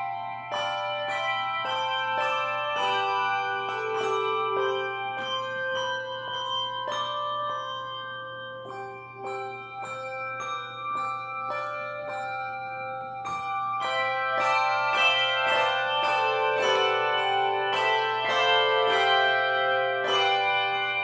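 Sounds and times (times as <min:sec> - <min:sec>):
handbells ringing: 0:00.0 - 0:21.0.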